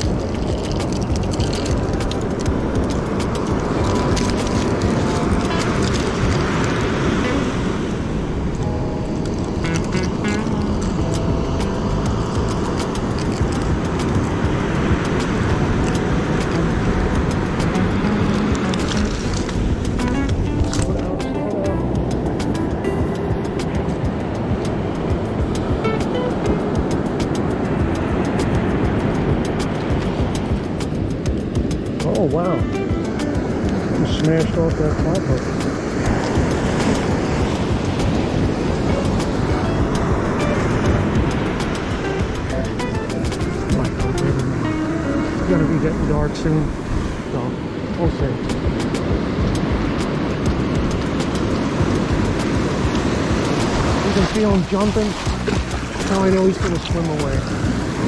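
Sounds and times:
background music: 0.0 - 46.7
beach surf rushing: 0.0 - 58.0.

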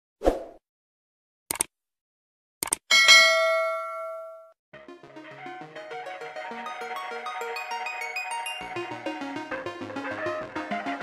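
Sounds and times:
quick double clicks: 1.5 - 1.7, 2.6 - 2.8
bell ding: 2.9 - 4.6.

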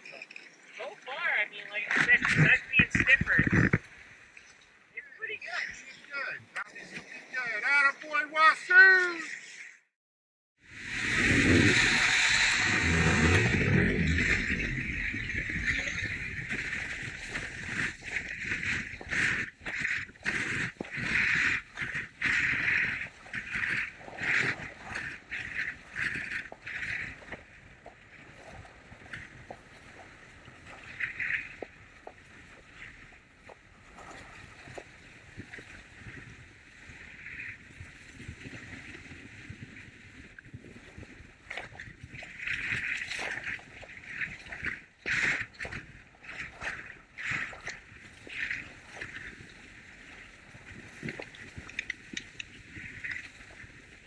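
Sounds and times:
skis scraping on snow: 10.8 - 27.5.

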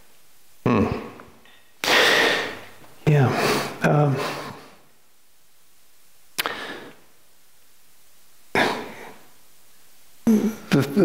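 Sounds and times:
man breathing out: 1.5 - 2.6.

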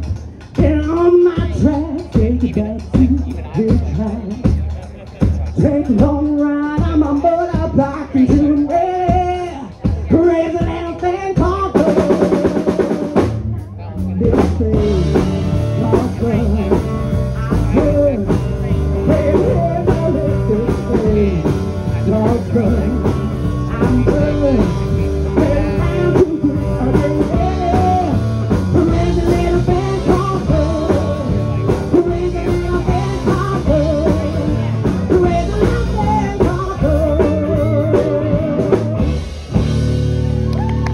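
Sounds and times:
person singing: 0.0 - 4.6, 5.4 - 13.3, 14.1 - 39.4
bass guitar: 0.0 - 40.9
drum kit: 0.0 - 40.9
electric guitar: 5.3 - 40.9.

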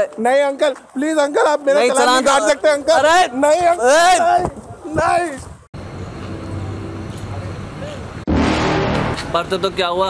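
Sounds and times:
road traffic hum: 5.4 - 10.0
sudden loud noisy burst: 8.3 - 9.6.

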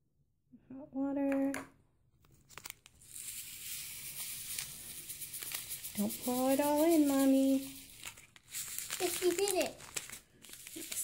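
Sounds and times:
plastic packet crinkling: 2.2 - 11.0
granules pouring into water: 2.6 - 11.0.

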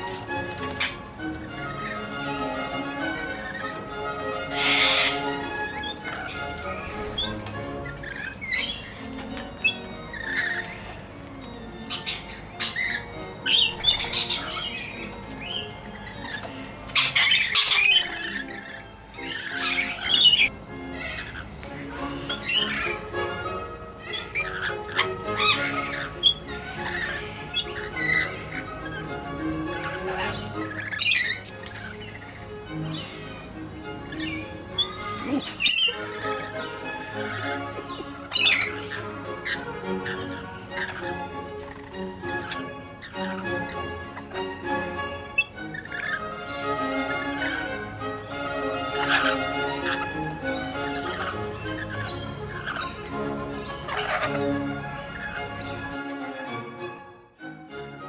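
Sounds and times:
background music: 0.0 - 58.0
lorikeets calling: 0.0 - 58.0.

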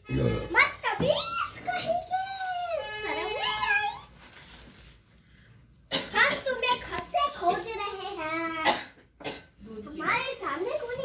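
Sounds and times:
harsh cough-like burst: 5.9 - 6.6, 8.6 - 9.6.

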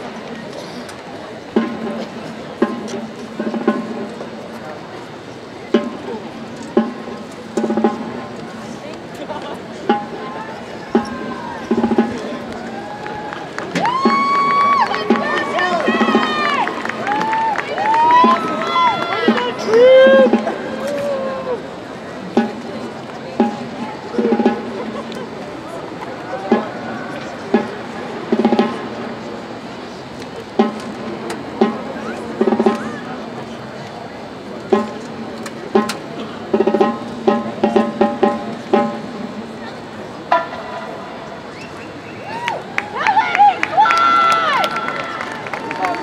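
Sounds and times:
marching drumline cadence: 0.0 - 46.0.

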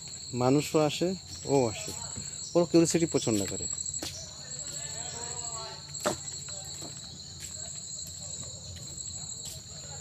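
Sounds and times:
high-pitched insect chorus: 0.0 - 10.0.

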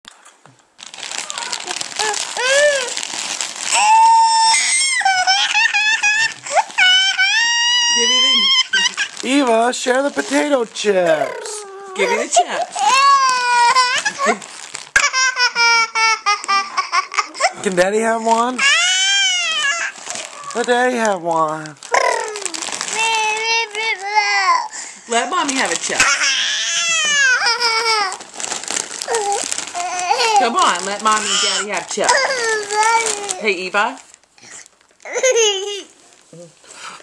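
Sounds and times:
toddler crying: 1.1 - 3.0, 3.7 - 9.4, 11.0 - 17.6, 18.6 - 20.7, 21.9 - 24.8, 25.9 - 28.2, 29.0 - 33.5, 35.0 - 36.0.

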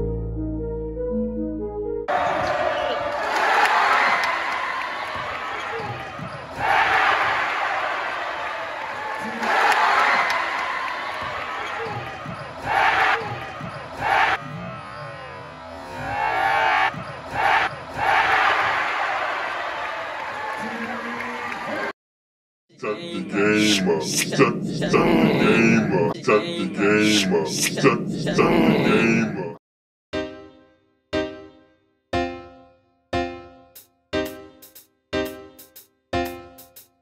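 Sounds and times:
synth intro music: 0.0 - 2.1
crowd noise: 2.1 - 21.9.

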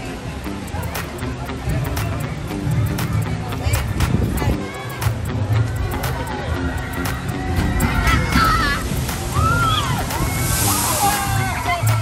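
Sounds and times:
water wave sloshing: 7.6 - 12.0
falling spray hiss: 8.9 - 11.6.

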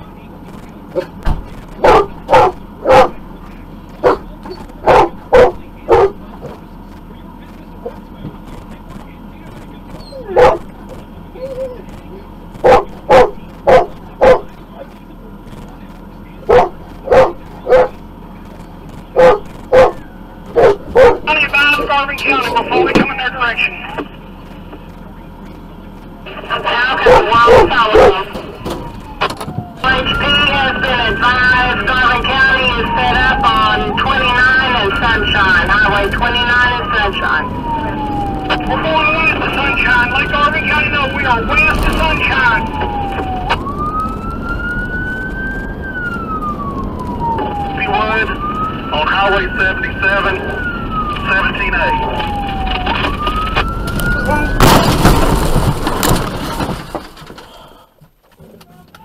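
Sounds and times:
dog barking: 1.8 - 3.2, 4.0 - 6.2, 10.0 - 10.7, 12.6 - 14.6, 16.4 - 18.0, 19.2 - 21.3, 27.0 - 28.3.

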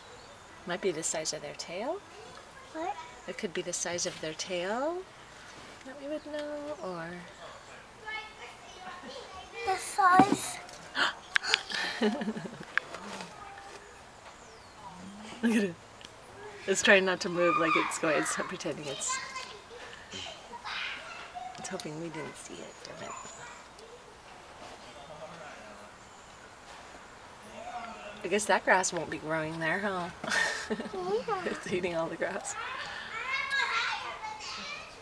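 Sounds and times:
faint children chattering: 1.7 - 3.4, 4.8 - 26.0, 30.3 - 35.0.

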